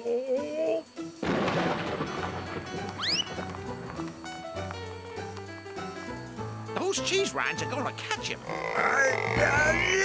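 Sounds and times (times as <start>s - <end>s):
cartoon music: 2.8s - 3.4s, 7.0s - 10.0s
cartoon crash sound effect: 3.0s - 3.4s.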